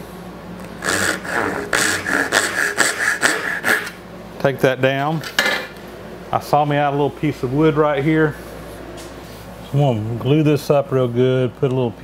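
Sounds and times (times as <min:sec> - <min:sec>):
hand saw cutting wood: 0:00.7 - 0:04.0.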